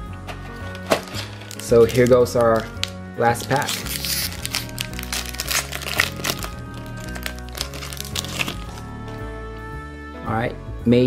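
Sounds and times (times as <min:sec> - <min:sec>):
background music: 0:00.0 - 0:11.0
foil wrapper crinkling and tearing: 0:00.6 - 0:08.8.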